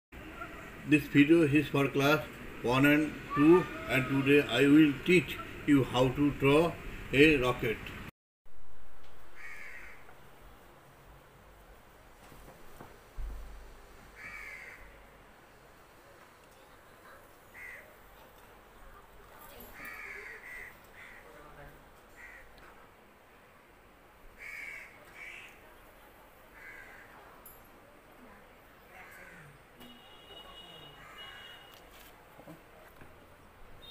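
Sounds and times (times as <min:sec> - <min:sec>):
crow cawing: 0:09.4 - 0:10.1, 0:14.2 - 0:15.0, 0:17.5 - 0:17.9, 0:19.8 - 0:21.4, 0:22.1 - 0:22.6, 0:24.4 - 0:25.6, 0:26.6 - 0:27.2, 0:28.9 - 0:29.6, 0:31.0 - 0:31.6.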